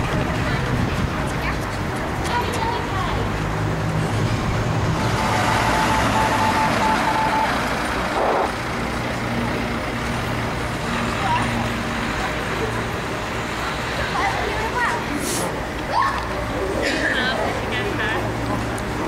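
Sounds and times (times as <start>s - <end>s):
people's voices: 0.0s - 19.0s.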